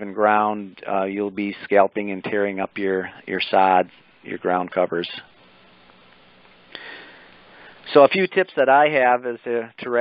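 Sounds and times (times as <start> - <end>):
man speaking: 0.0 - 5.4, 7.8 - 10.0
microphone line hiss: 0.0 - 10.0
man breathing in through nose: 6.7 - 7.8.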